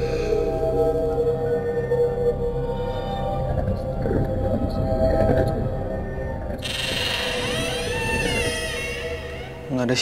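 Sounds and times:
low rumbling drone: 0:00.0 - 0:09.7
eerie horror score: 0:00.0 - 0:10.0.

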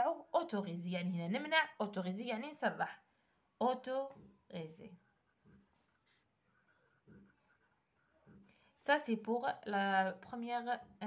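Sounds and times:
pencil scratching on paper: 0:04.1 - 0:09.3.

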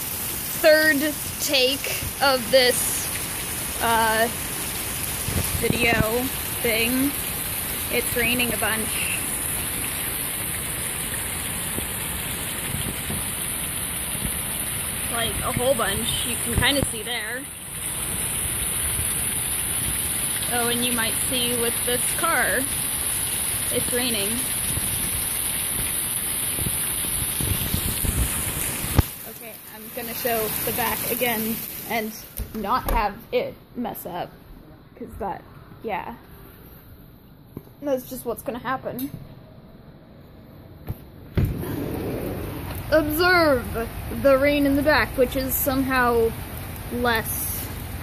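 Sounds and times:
heavy rain: 0:00.0 - 0:33.5, 0:41.3 - 0:48.0
door opening thud: 0:32.4 - 0:33.2.

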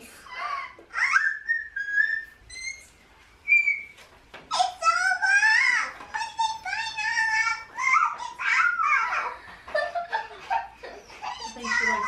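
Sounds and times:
high-pitched whistling: 0:01.2 - 0:04.0.

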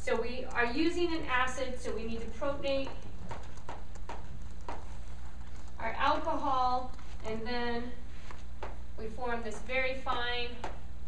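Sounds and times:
low room hum: 0:00.0 - 0:11.0
chalk tapping a blackboard: 0:02.8 - 0:05.0.

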